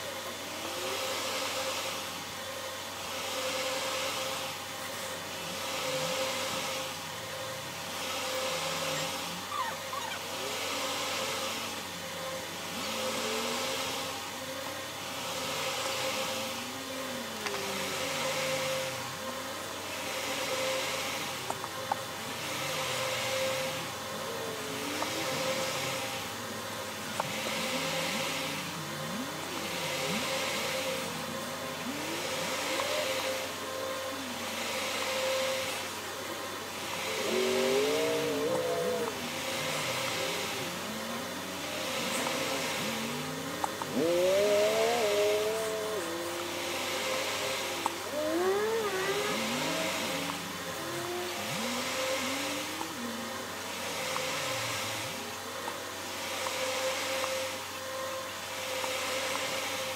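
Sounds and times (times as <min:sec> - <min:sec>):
faint wavering tones: 0:00.0 - 0:59.9
hiss: 0:00.0 - 0:59.9
machine hum: 0:00.0 - 0:59.9.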